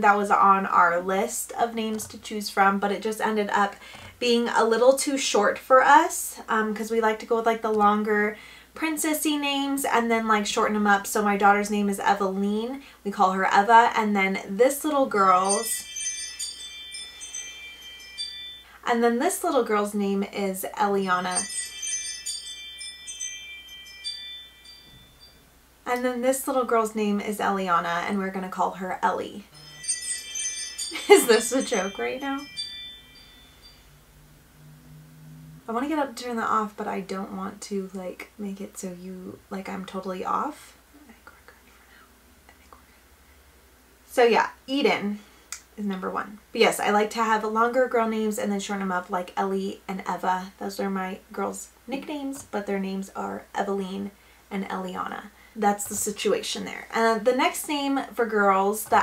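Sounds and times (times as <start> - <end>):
chimes ringing: 15.2 - 19.7, 21.0 - 25.7, 29.5 - 35.7
faint low hum: 30.8 - 59.0.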